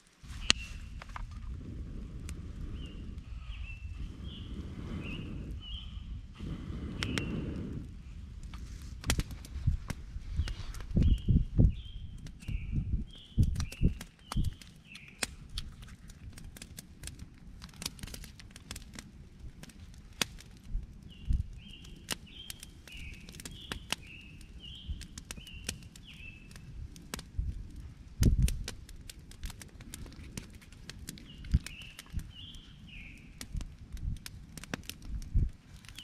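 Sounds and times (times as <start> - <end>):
campfire crackling and popping: 0.0 - 36.0.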